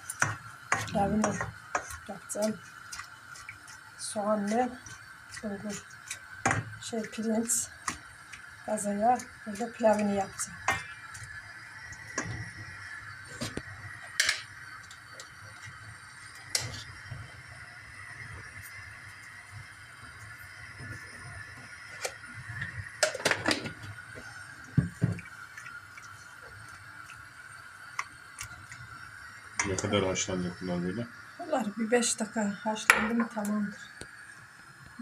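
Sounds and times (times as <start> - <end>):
spoon stirring greens in a pot: 0.0 - 17.4.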